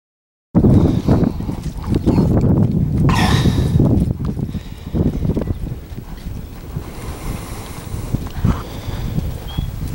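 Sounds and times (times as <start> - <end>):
wind rumble on microphone: 0.6 - 9.9.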